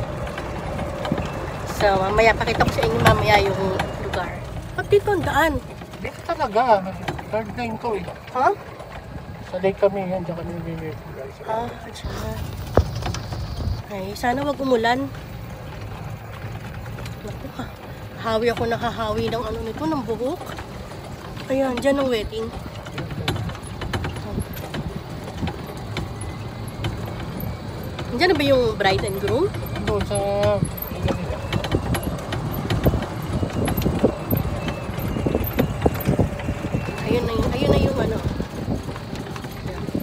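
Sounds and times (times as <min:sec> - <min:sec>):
golf cart rumbling: 0:00.0 - 0:40.0
wind buffeting microphone: 0:00.0 - 0:40.0.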